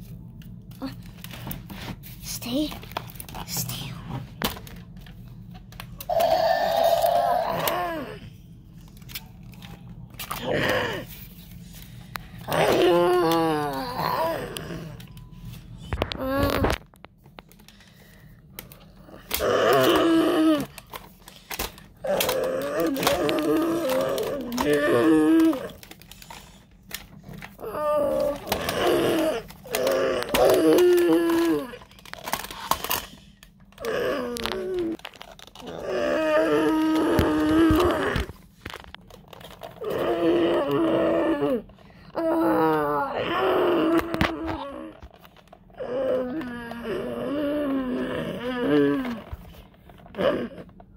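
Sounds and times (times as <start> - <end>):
person voicing dinosaur roar: 6.0 - 8.3, 10.3 - 11.1, 12.4 - 15.1, 19.0 - 20.8, 22.0 - 25.8, 27.6 - 31.8, 33.8 - 35.0, 35.6 - 38.3, 39.8 - 45.0, 45.8 - 49.2
person making moaning growls: 6.0 - 8.4, 10.2 - 11.2, 12.4 - 15.2, 18.8 - 21.0, 21.6 - 26.0, 27.5 - 31.9, 33.7 - 38.4, 39.8 - 49.4, 50.1 - 50.8
toy handling clicks: 18.6 - 35.8.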